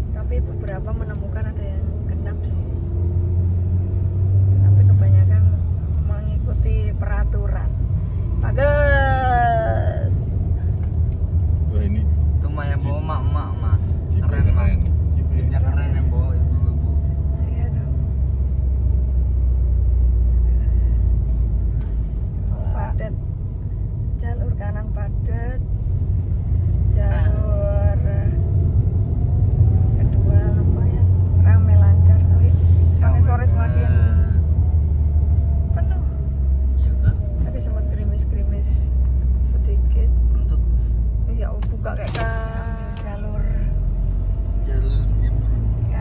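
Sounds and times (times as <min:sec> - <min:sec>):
car cabin rumble: 0:20.6 - 0:44.0.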